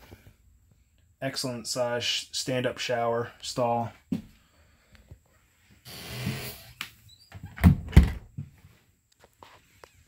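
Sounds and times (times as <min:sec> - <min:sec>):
door sliding: 0:05.9 - 0:08.2
door thudding against frame: 0:07.5 - 0:08.3.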